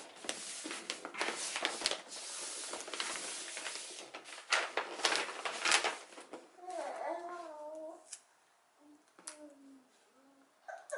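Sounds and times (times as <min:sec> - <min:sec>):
wrapping paper rustling and crinkling: 0:00.0 - 0:08.0.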